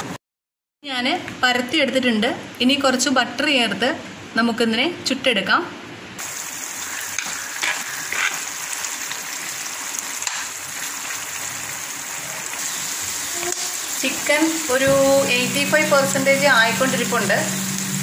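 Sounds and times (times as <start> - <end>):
chicken sizzling in frying pan: 6.2 - 18.0
spatula stirring: 7.2 - 8.7.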